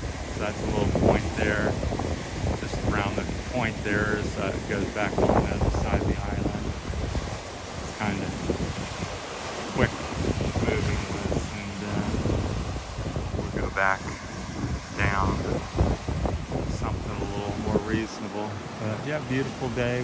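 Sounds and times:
waves breaking on rocky shore: 0:00.0 - 0:20.0
wind on microphone: 0:00.0 - 0:20.0.

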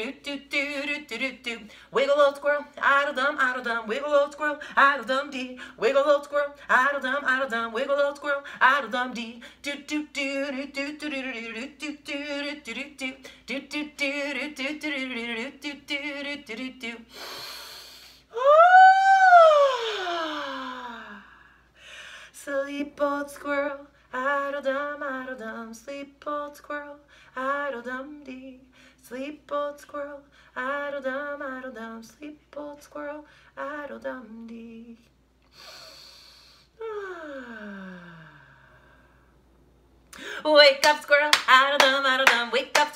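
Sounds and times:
woman breathing in: 0:17.1 - 0:18.3, 0:19.7 - 0:22.4, 0:35.5 - 0:39.4, 0:40.1 - 0:40.5
woman yawning loudly: 0:18.3 - 0:21.2
woman sighing: 0:19.2 - 0:21.5, 0:36.8 - 0:39.0.

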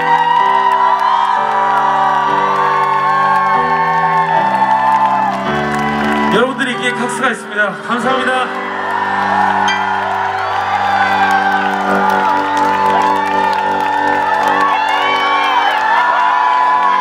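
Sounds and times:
crowd cheering and whooping: 0:00.0 - 0:06.8, 0:08.5 - 0:17.0.

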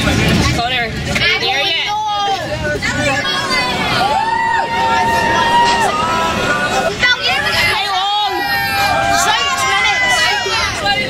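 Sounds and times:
children calling out and chattering: 0:01.3 - 0:11.0
bus road noise: 0:02.4 - 0:11.0.

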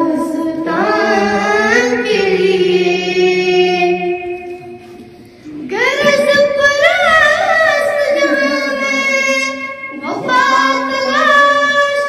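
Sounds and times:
girl singing into a microphone: 0:00.0 - 0:04.6, 0:05.7 - 0:12.0.

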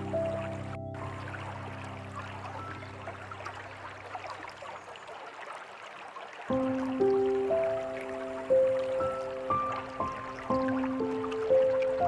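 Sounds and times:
soft music: 0:00.0 - 0:05.0, 0:06.5 - 0:12.0
water trickling and dripping: 0:00.0 - 0:12.0.

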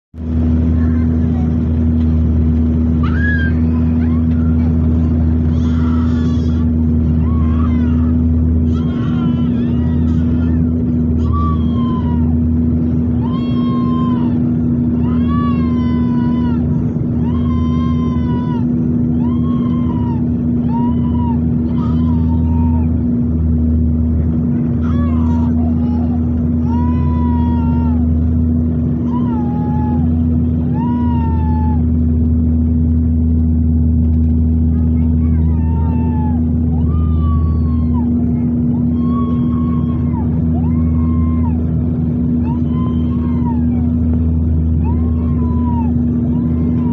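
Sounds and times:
propeller and engine drone: 0:00.0 - 0:46.9
high voice crying out: 0:05.4 - 0:23.0, 0:24.8 - 0:28.2.

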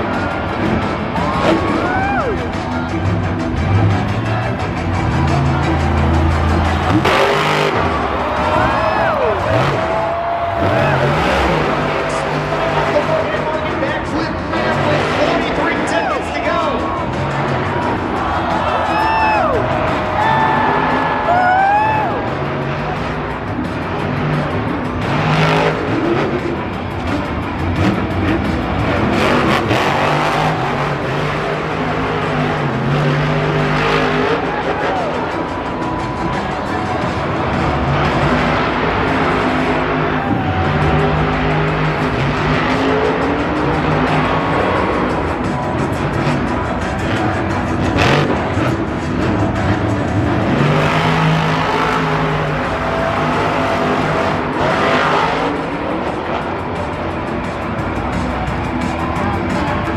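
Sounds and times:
loud stadium pa music: 0:00.0 - 0:59.9
truck engine revving: 0:00.0 - 0:59.9.

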